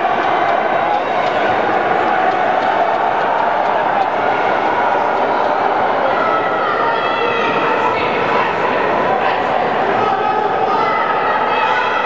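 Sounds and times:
crowd voices talking and shouting: 0.0 - 12.0.

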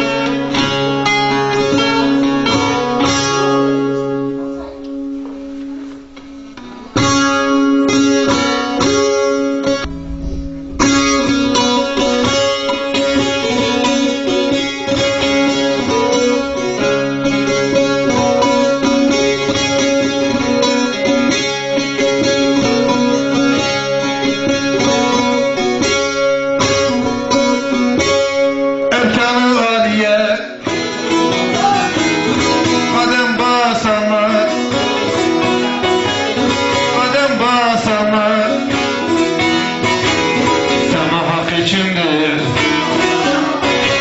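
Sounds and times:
saz strummed rapidly: 0.0 - 4.0, 6.6 - 44.0
person singing: 28.8 - 38.8, 40.7 - 44.0.

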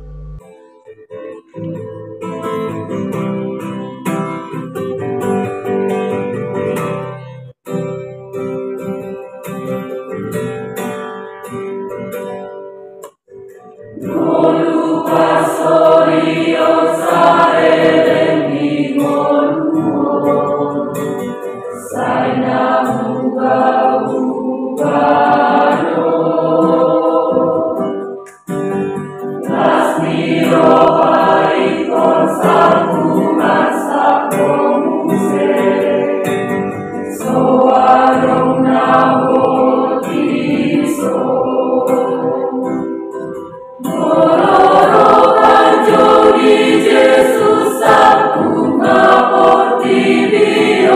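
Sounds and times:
youth choir singing a hymn: 13.9 - 28.2, 29.4 - 50.9.

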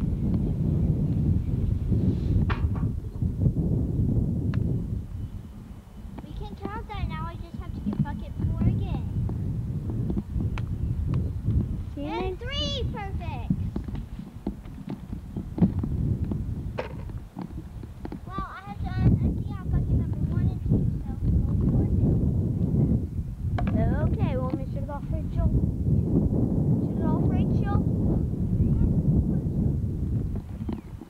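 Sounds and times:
steady low rumble: 0.0 - 31.0.

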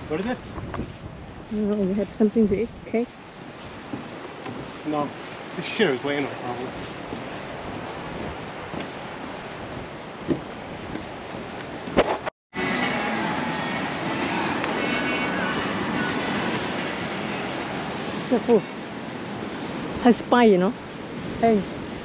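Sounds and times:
wind hiss: 0.0 - 12.0
surf on a beach: 0.0 - 22.0.

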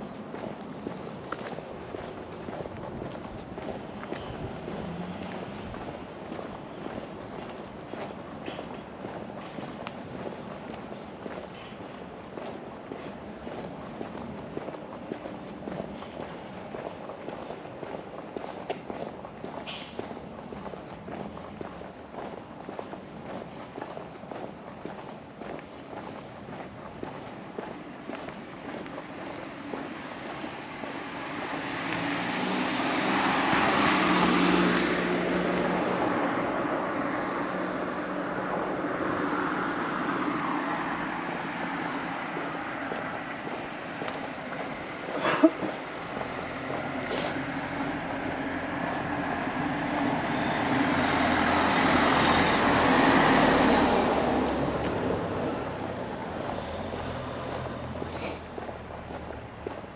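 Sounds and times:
footsteps on asphalt: 0.0 - 59.9
quieter vehicle passing: 0.0 - 59.9
car driving past: 29.2 - 59.8.

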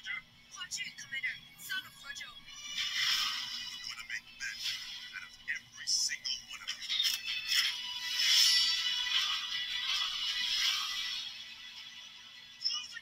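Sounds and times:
movie trailer music: 1.2 - 12.6.

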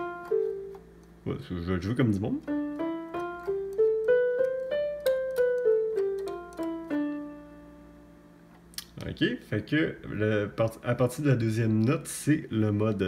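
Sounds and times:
electronic keyboard playing scale: 0.0 - 8.5.

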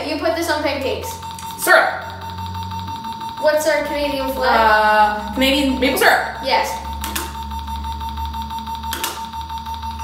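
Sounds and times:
electronic game timer beeping: 0.0 - 10.0.

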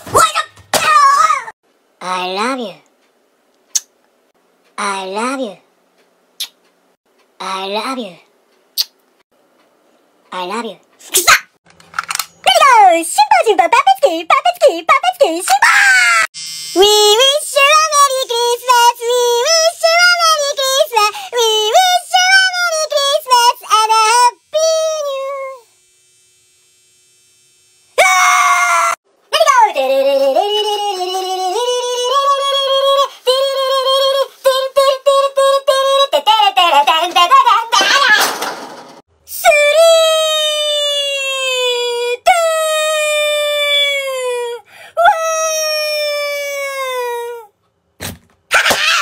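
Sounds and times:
high child-like singing voice: 16.8 - 25.7, 29.3 - 38.2, 39.3 - 47.5
voice wailing in mock crying: 39.8 - 47.5.

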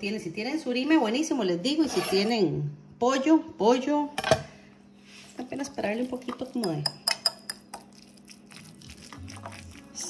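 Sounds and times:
fork clinking against ceramic bowl: 6.6 - 7.9.

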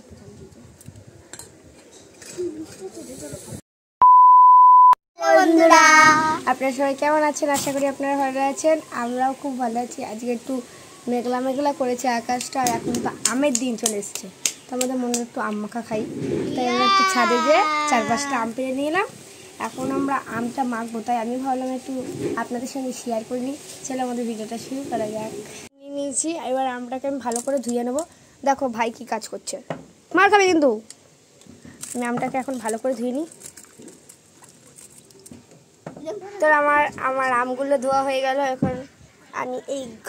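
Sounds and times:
high test-tone beep: 4.0 - 5.0
children shouting together: 5.2 - 6.5, 16.5 - 18.5
girl singing drawn out notes: 5.2 - 6.5
person's voice: 5.2 - 29.5.

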